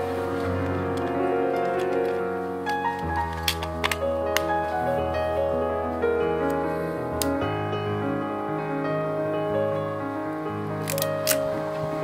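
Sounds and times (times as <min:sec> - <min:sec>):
piano background music: 0:00.0 - 0:12.0
camera controls clicking: 0:10.9 - 0:11.4.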